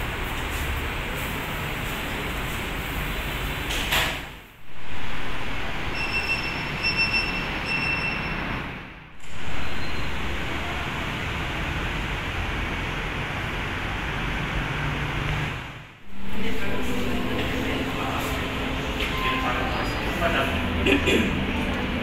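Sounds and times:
air-conditioning noise: 0.0 - 22.0
short high electronic beeps: 5.9 - 8.5.

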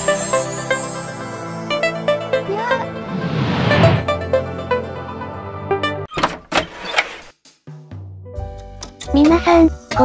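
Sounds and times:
whooshing transition effects: 3.0 - 4.2.

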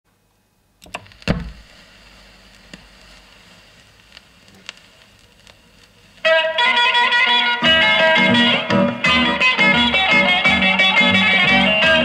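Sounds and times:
vinyl surface hiss: 0.1 - 12.0
vinyl clicks and pops: 0.8 - 6.3.

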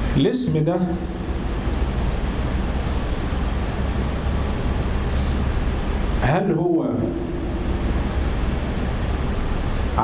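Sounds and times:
room background rushing noise: 0.0 - 10.0.

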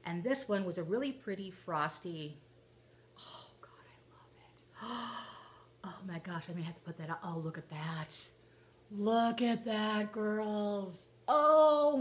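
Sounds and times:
woman whispering: 3.2 - 4.7.

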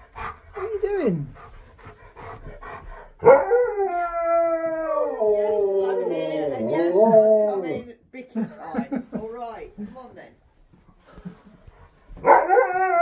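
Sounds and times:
dog howling: 3.2 - 7.9, 12.2 - 13.0.

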